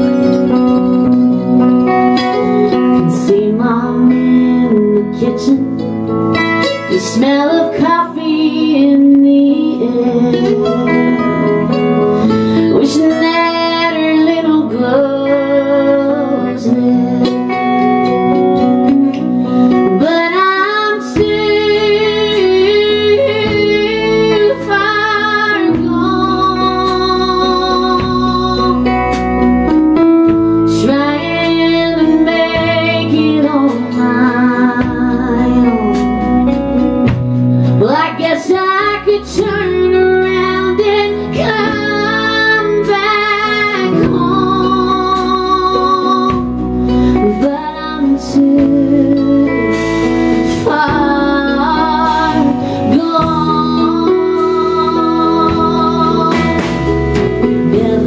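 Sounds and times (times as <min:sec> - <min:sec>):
bass: 0:00.0 - 0:58.0
electric guitar: 0:00.0 - 0:58.0
strummed acoustic guitar: 0:00.0 - 0:58.0
woman singing: 0:00.0 - 0:58.0.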